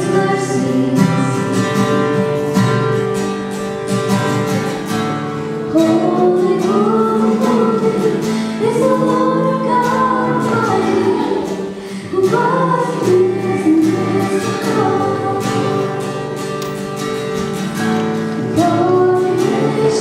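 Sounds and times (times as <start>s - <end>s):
person singing: 0.0s - 2.2s, 5.7s - 16.8s, 18.3s - 20.0s
acoustic guitar strummed: 0.0s - 20.0s.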